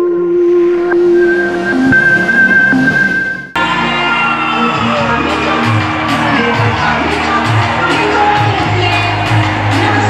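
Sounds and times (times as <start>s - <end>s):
electronic logo intro music: 0.0s - 3.9s.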